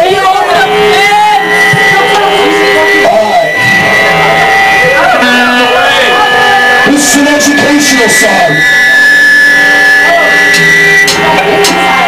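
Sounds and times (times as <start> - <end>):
loud distorted live band: 0.0 - 12.0.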